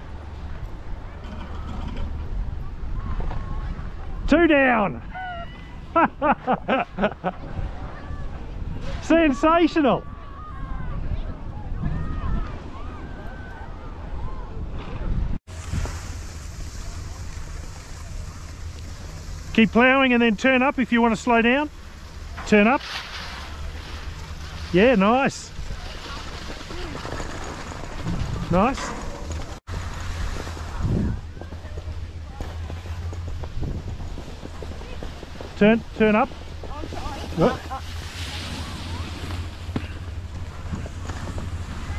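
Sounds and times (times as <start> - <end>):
wind buffeting microphone: 10.0 - 19.6, 25.5 - 41.9
skis sliding over snow: 15.5 - 41.9.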